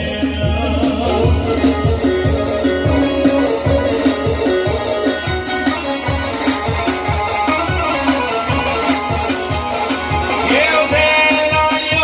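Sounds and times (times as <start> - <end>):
steady low beat: 0.0 - 10.6
plucked string instrument: 0.0 - 12.0.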